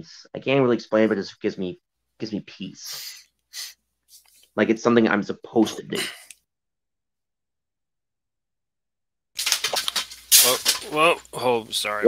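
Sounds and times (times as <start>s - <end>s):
objects falling and rattling: 9.4s - 10.9s.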